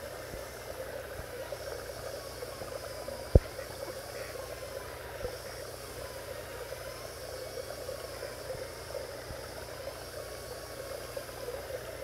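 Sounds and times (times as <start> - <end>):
trickling pond water: 0.0 - 12.0.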